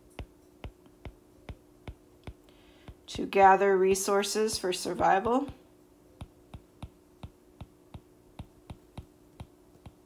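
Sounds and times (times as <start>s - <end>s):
faint steady hum: 0.0s - 10.0s
taps on glass touchscreen: 6.2s - 10.0s.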